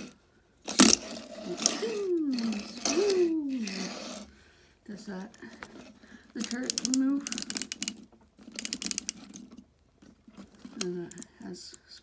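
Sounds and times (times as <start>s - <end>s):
plastic toy ratcheting clicks: 6.4s - 9.6s.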